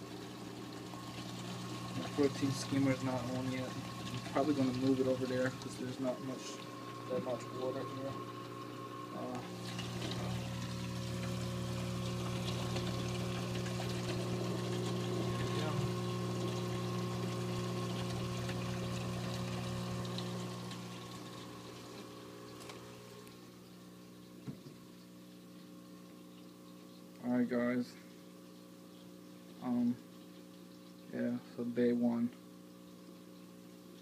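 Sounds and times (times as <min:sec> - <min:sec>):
water splashing from drain hose: 0:00.0 - 0:23.4
pump hum: 0:00.0 - 0:34.0.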